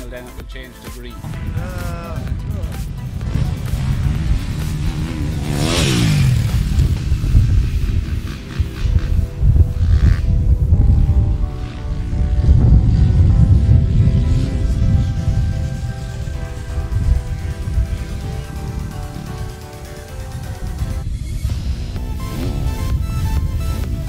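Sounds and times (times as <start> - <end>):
background music: 0.0 - 24.0
motocross engine revving: 1.3 - 24.0.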